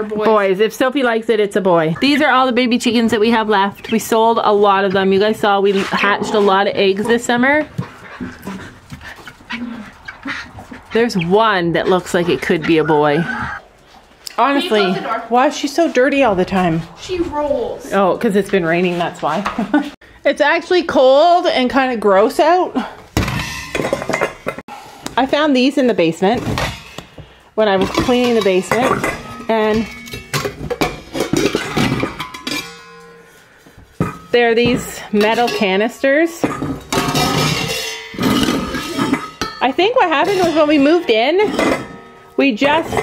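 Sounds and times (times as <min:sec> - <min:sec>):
metal canisters clanking: 0:23.2 - 0:24.6, 0:26.4 - 0:33.4, 0:34.0 - 0:43.0.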